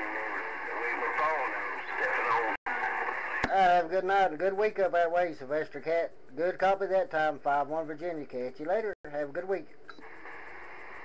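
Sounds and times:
man's voice over radio speaker: 0.0 - 2.6
static hiss: 0.0 - 11.0.

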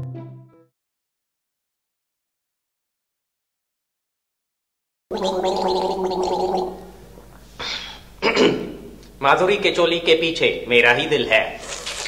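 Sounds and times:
man gargling: 5.1 - 6.9
breathy hiss: 6.8 - 8.2, 11.6 - 12.0.

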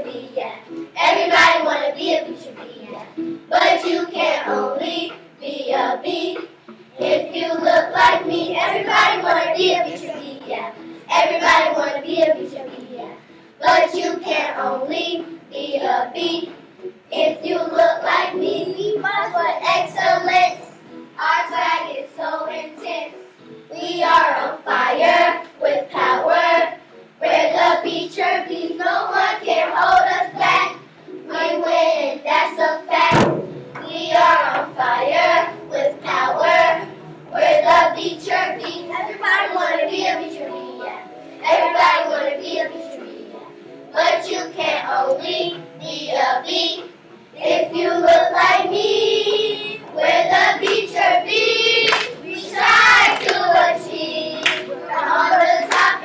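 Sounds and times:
children singing together: 0.0 - 56.0
hand claps: 50.6 - 50.9, 51.9 - 52.2, 53.0 - 53.5, 54.4 - 54.7, 55.7 - 56.0.

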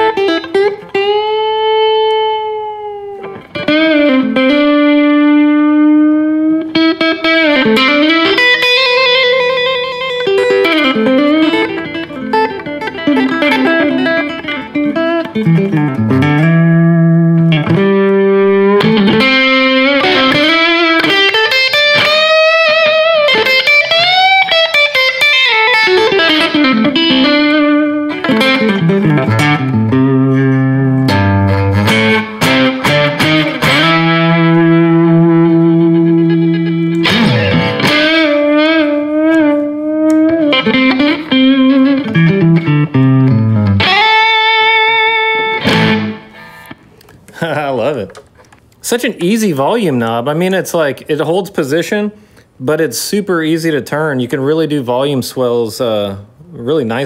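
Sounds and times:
electric guitar lead line: 0.0 - 48.5.

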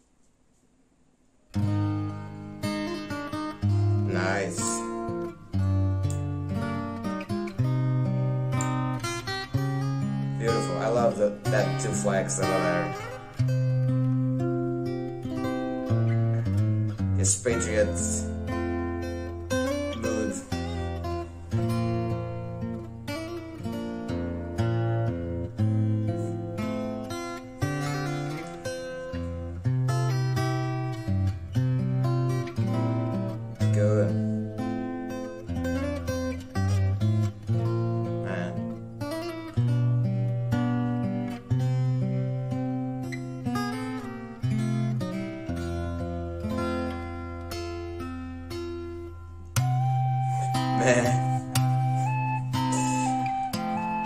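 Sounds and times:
fingerstyle acoustic guitar: 1.5 - 54.0.

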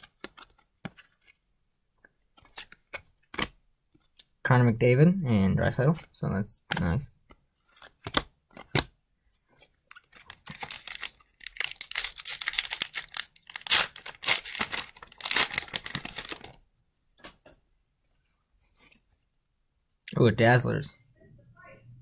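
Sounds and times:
foil wrapper crinkling and tearing: 10.0 - 16.6.

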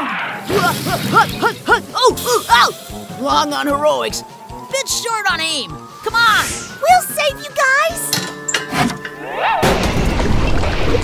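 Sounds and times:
background music: 0.0 - 10.8.

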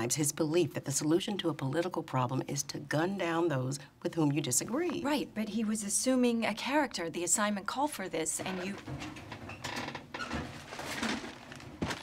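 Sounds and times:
paper bag crinkling: 10.3 - 12.0.

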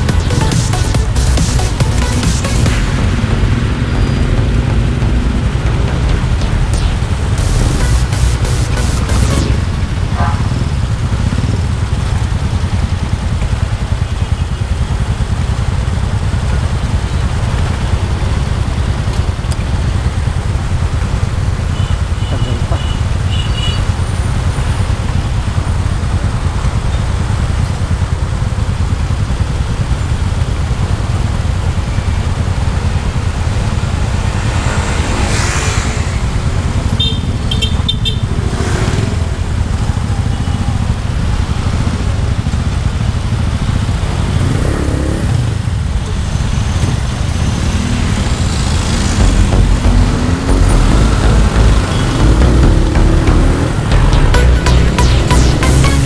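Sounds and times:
motorcycle engines idling: 0.0 - 56.0.

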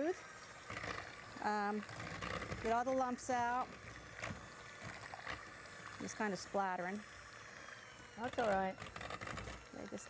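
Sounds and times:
electric hand mixer running: 0.0 - 10.0.

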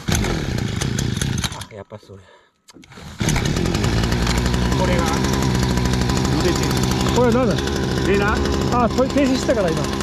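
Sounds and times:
outboard motor starting and running: 0.0 - 1.6, 2.8 - 10.0.

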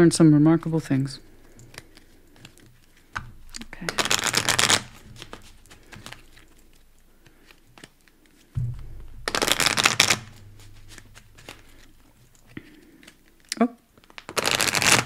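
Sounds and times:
cards riffling: 1.2 - 15.0.

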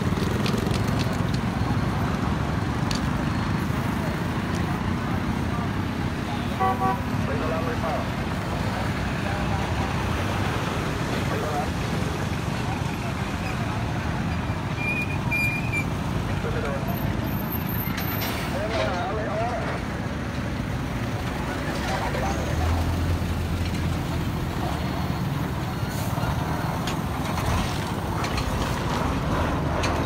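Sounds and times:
heavy truck rumble: 0.0 - 30.0
highway traffic passing: 0.0 - 30.0.

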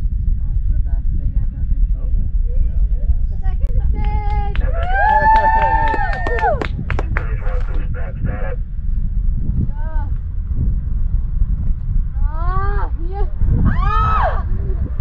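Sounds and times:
steady low rumble: 0.0 - 15.0
spectators whooping and calling out: 4.6 - 6.7, 13.6 - 14.6.

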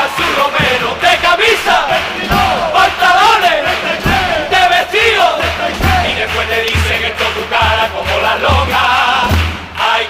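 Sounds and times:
male chorus singing loudly: 0.0 - 10.0
low drum thump: 0.6 - 3.1, 3.9 - 7.0.

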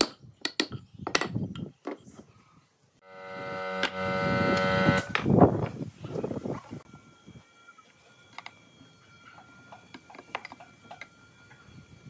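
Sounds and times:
power tool motor whining: 3.0 - 5.2.

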